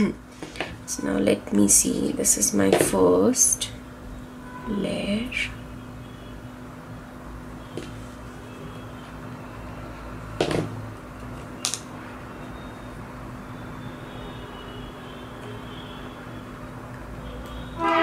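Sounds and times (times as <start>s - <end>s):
steady background hum: 0.0s - 18.0s.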